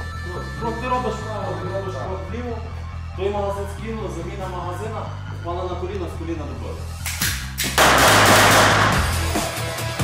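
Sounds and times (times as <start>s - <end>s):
background music: 0.0s - 10.0s
pistol shots echoing: 7.8s - 9.3s.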